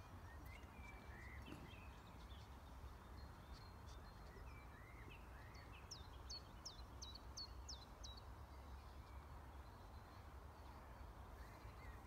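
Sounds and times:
birdsong: 0.0 - 12.0
quiet outdoor ambience: 0.0 - 12.0.

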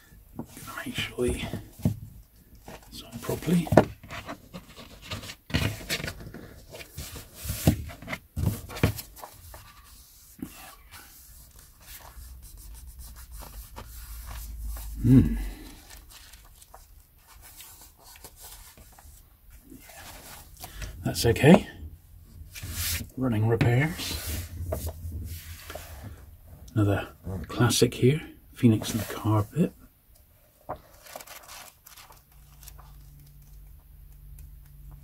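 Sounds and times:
book pages rustling: 0.4 - 21.6, 22.4 - 26.2, 28.7 - 29.6, 30.5 - 35.0.

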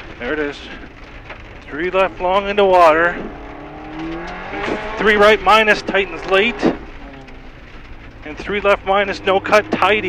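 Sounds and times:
car engine accelerating: 0.0 - 10.0
gravel hissing under tyres: 0.0 - 10.0.

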